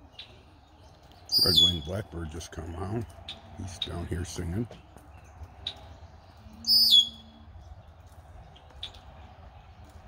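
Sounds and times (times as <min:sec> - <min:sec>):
blackbird song phrase: 0:00.0 - 0:10.0.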